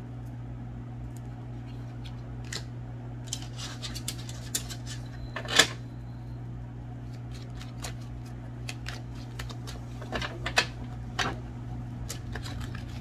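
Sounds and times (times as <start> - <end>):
steady low hum: 0.0 - 13.0
cards being shuffled: 7.0 - 10.7, 12.0 - 13.0.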